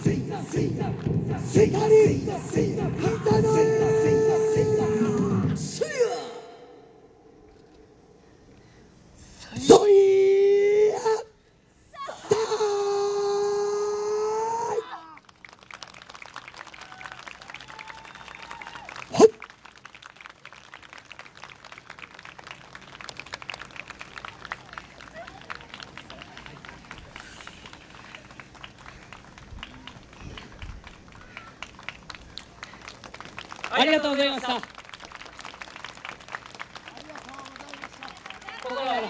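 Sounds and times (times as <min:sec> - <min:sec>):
audience clapping: 0:00.0 - 0:05.6, 0:14.9 - 0:39.0
dance music with held vocal note: 0:00.0 - 0:07.2
loud shout: 0:01.6 - 0:06.8, 0:11.9 - 0:15.2, 0:16.8 - 0:19.4.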